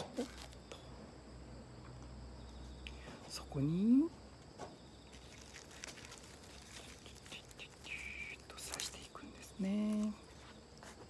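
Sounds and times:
rustling of rose stems: 0:00.0 - 0:00.8, 0:04.6 - 0:11.0.

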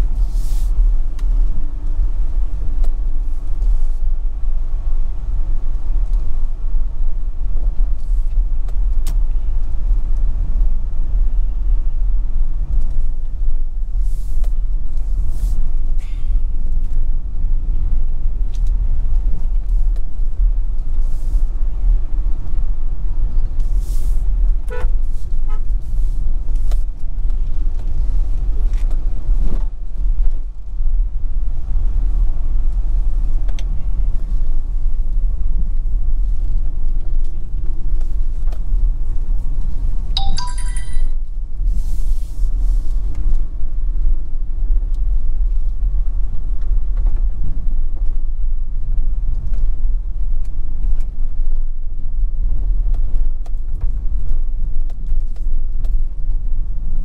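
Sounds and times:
vehicle rumbling on rough road: 0:00.0 - 0:40.2, 0:41.2 - 0:57.0
brief high-pitched tone: 0:40.2 - 0:41.2.

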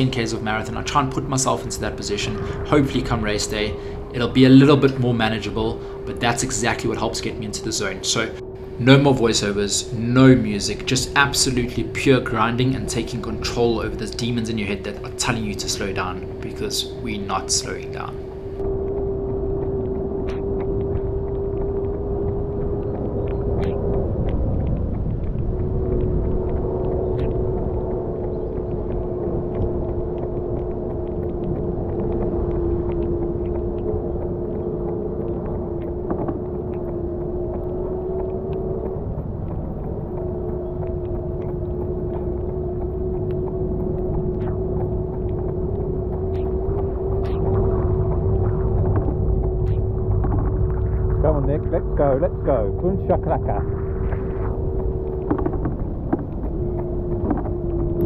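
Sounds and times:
vehicle motor whine: 0:00.0 - 0:58.0
wheels rumbling on road: 0:00.0 - 0:58.0
wind on microphone: 0:00.0 - 0:58.0.

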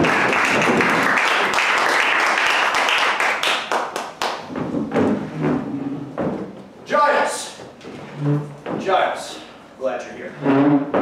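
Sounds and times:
audience applauding: 0:00.0 - 0:04.5.

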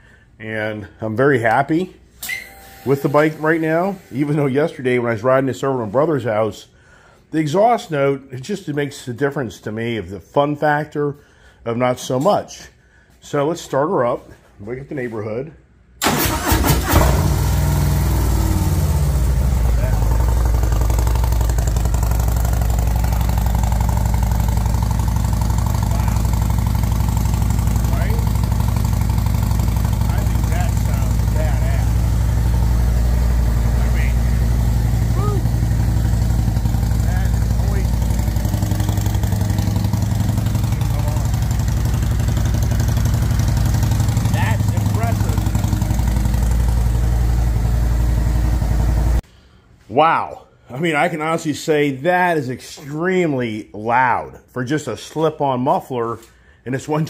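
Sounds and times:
motorcycle engine idling: 0:17.3 - 0:49.2.

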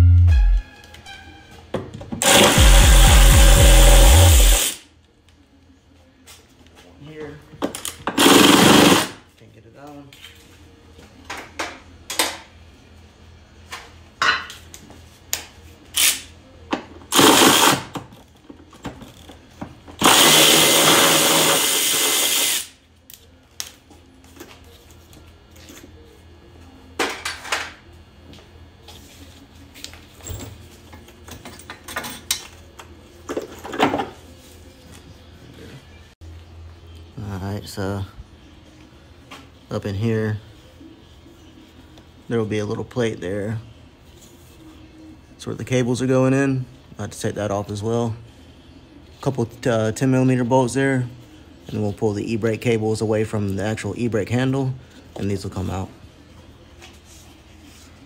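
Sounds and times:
cordless power tool spinning bolts: 0:02.2 - 0:04.8, 0:20.0 - 0:22.6.

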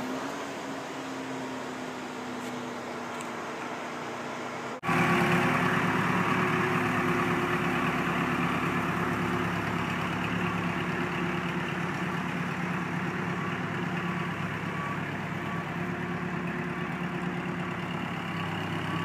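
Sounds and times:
diesel engine running: 0:00.0 - 0:19.0.

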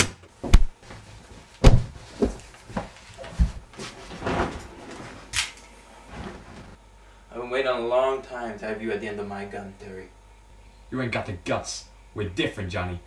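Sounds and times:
bodies and hands thumping in scuffle: 0:00.0 - 0:04.7.

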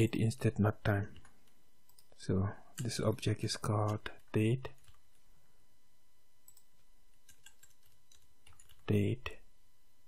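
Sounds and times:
low background hiss: 0:00.0 - 0:10.0.

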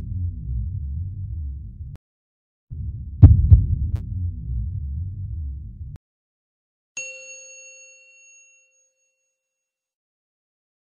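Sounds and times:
metallic chime ringing: 0:07.0 - 0:09.7.

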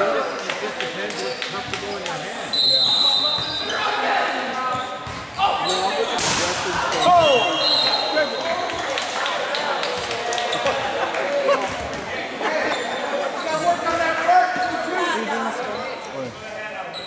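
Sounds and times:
sneakers squeaking on floor: 0:01.1 - 0:04.0, 0:04.6 - 0:08.6, 0:11.7 - 0:15.0, 0:15.6 - 0:16.2
players calling out: 0:01.2 - 0:09.0
volleyball being hit: 0:06.2 - 0:07.4.

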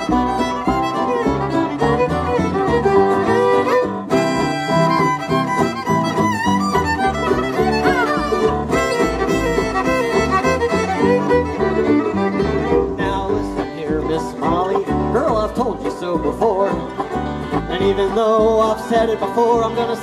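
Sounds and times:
fiddle melody: 0:00.0 - 0:20.0
stepping bass line: 0:00.0 - 0:20.0
string band backing: 0:00.0 - 0:20.0.

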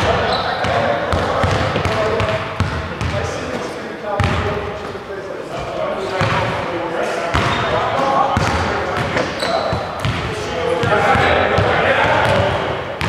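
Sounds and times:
basketball bouncing on wooden floor: 0:04.2 - 0:04.5, 0:08.4 - 0:11.0.

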